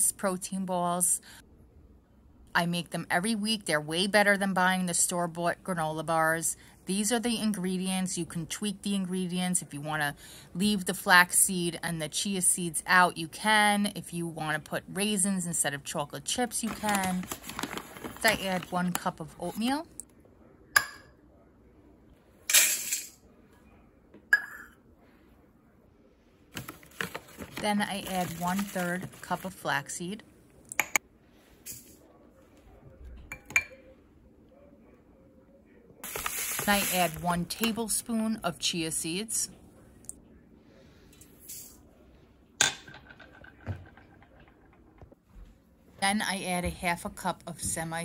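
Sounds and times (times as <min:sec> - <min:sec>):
oats pouring into metal bowl: 0:36.0 - 0:37.1.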